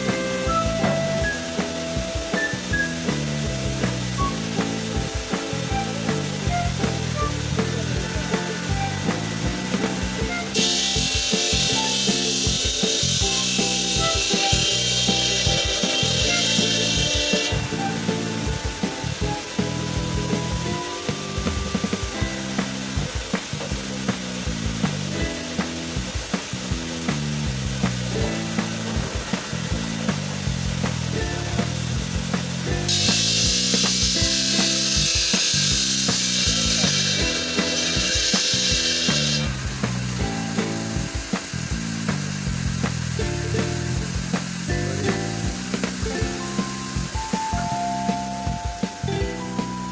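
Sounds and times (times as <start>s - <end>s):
circular saw cutting marble: 0.0s - 27.3s, 28.5s - 46.0s
background music with a beat: 0.0s - 49.9s.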